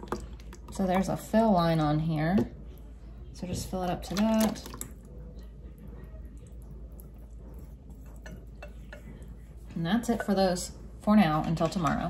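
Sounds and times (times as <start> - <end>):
liquid pouring into container: 0.0 - 1.2, 3.8 - 7.5.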